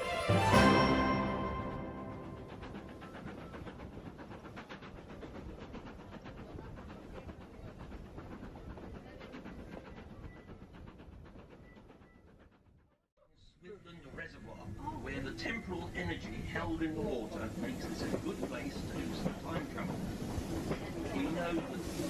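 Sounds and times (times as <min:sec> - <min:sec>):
train rumble inside carriage: 0:00.2 - 0:13.0, 0:13.7 - 0:22.0
wheels clicking on rails: 0:01.6 - 0:12.9, 0:13.9 - 0:22.0.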